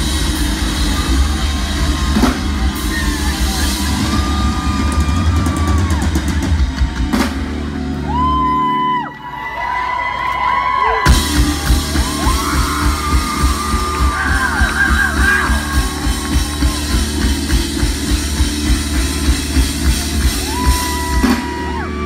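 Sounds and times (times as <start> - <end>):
live band playing loudly: 0.0 - 8.8, 11.0 - 22.0.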